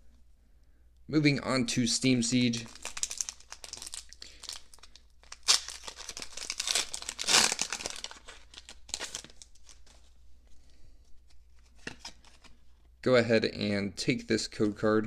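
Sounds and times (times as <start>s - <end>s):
foil wrapper tearing open: 2.7s - 9.9s
foil crinkling: 2.7s - 10.1s.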